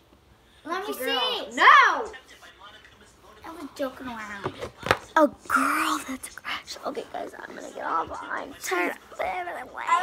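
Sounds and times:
girl whispering: 5.2 - 10.0.

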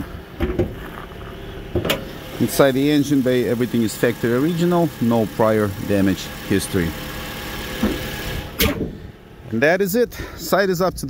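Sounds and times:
car engine idling: 0.0 - 10.4
thump: 7.8 - 8.0, 8.6 - 9.0
car hood latch click: 8.6 - 8.9.

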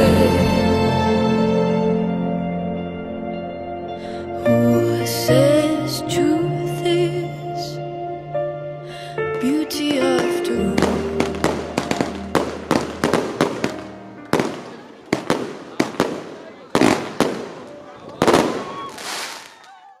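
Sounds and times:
fireworks bangs and crackling: 9.9 - 19.8.

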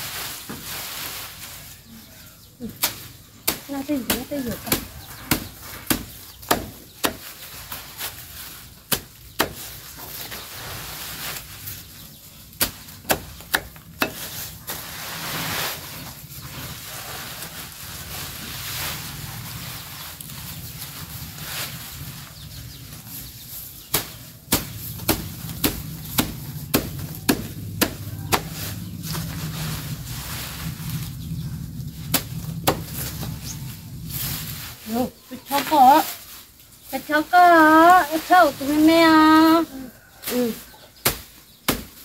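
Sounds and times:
leaves rustling: 0.0 - 42.0
knife chopping fodder: 23.9 - 28.6.

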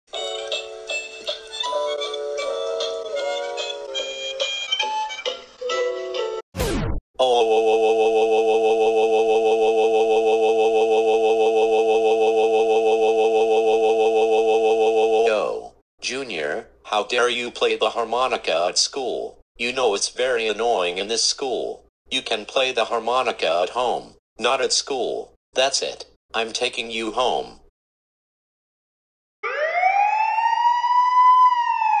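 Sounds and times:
police car siren: 29.4 - 32.0.

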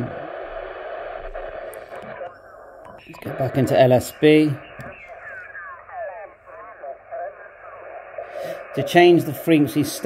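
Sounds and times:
radio receiver hiss: 0.0 - 10.0.

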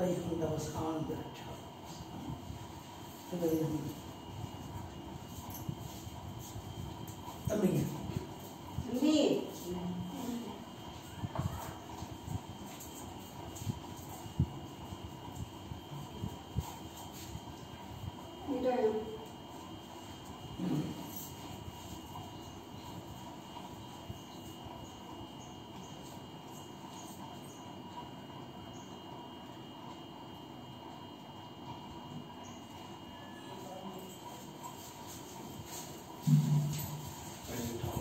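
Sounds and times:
thin high whine: 0.0 - 29.2, 32.1 - 38.0.

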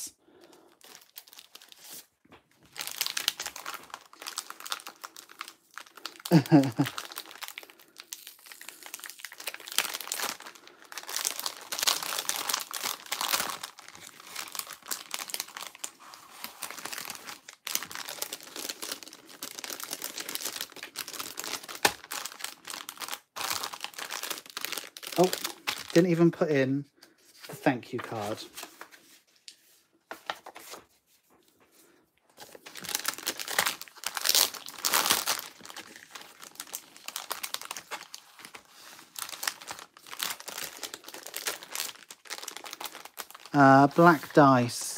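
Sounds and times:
plastic bags crinkling: 0.4 - 26.3, 32.3 - 44.9.

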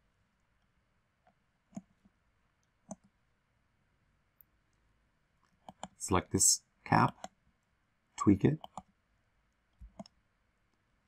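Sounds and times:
computer mouse clicks: 1.7 - 1.9, 2.8 - 3.2, 5.5 - 6.0, 8.6 - 8.9, 9.8 - 10.2.

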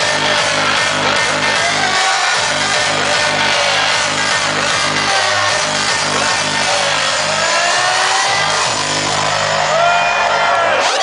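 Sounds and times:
hardstyle dance music: 0.0 - 11.0.

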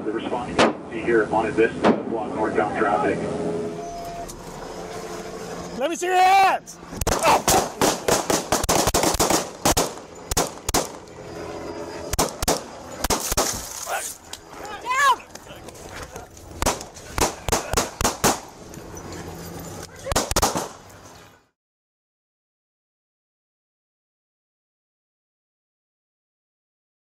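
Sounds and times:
voices: 0.0 - 8.4, 11.0 - 21.4.

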